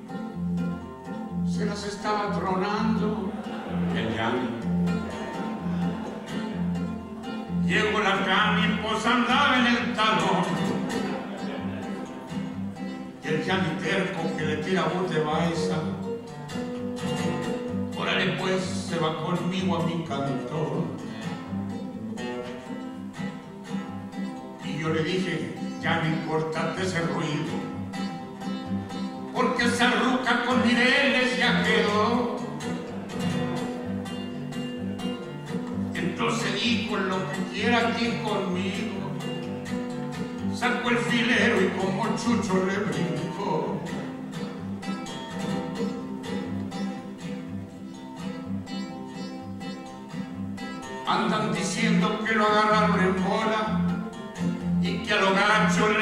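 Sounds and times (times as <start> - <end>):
nylon-string guitar strumming: 0.0 - 56.0
person singing: 1.0 - 16.2, 35.9 - 39.5, 40.5 - 44.2.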